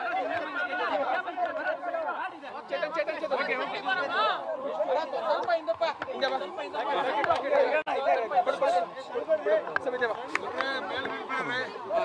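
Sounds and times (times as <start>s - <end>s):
other voices talking: 0.0s - 12.0s.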